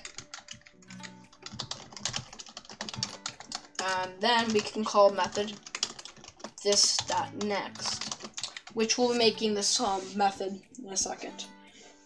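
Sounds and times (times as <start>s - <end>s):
typing on computer keyboard: 0.0s - 8.9s.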